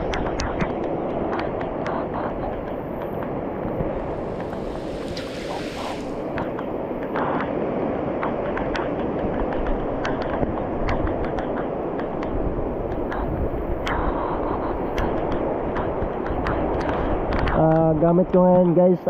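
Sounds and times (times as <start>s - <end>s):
heavy rain pouring: 3.6s - 6.6s.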